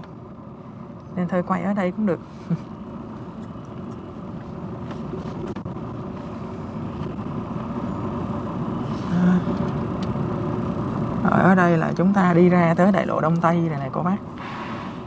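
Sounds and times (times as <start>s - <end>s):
bus engine and road noise: 0.0s - 15.0s.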